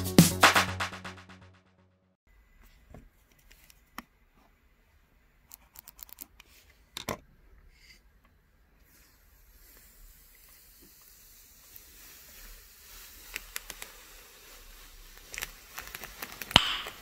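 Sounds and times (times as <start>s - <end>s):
plastic film peeling hiss: 8.8s - 17.0s
crackles and ticks of film: 9.8s - 17.0s.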